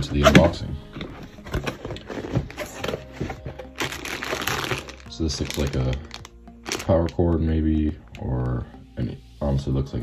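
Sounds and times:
cardboard box opening: 0:00.0 - 0:06.8
packing rustling and knocks: 0:00.0 - 0:07.1
soft background music: 0:00.0 - 0:10.0.

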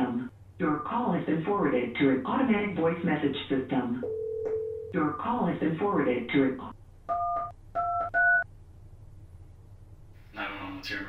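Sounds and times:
keypad touch-tone beeps: 0:07.1 - 0:08.4.

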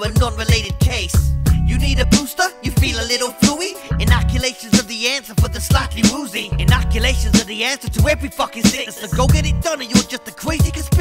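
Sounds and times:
man rapping over a beat: 0:00.0 - 0:11.0
deep bass note: 0:01.2 - 0:02.2, 0:03.9 - 0:04.4, 0:06.5 - 0:07.4, 0:09.2 - 0:09.7
drum hits: 0:04.1 - 0:06.8.

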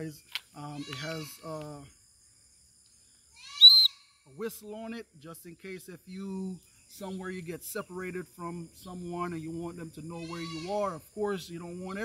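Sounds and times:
shrill whistle blast: 0:03.5 - 0:04.1.

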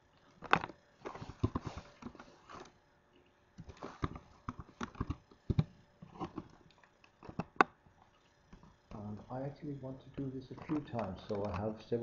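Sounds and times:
computer mouse clicks: 0:10.5 - 0:11.7.

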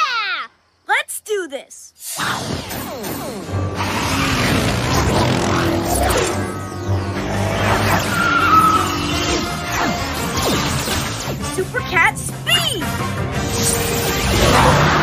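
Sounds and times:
cartoon action music: 0:02.2 - 0:15.0
vehicles speeding off: 0:03.8 - 0:09.7.

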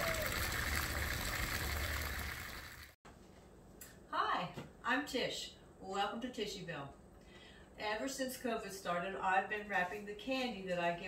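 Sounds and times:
water trickling in a fountain: 0:00.0 - 0:03.0.

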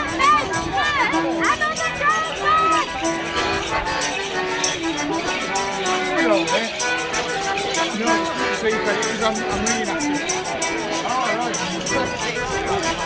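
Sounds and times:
crowd voices: 0:00.0 - 0:13.0
rattling beat: 0:00.0 - 0:13.0
saxophone melody: 0:00.0 - 0:13.0
street band folk dance tune: 0:00.0 - 0:13.0.

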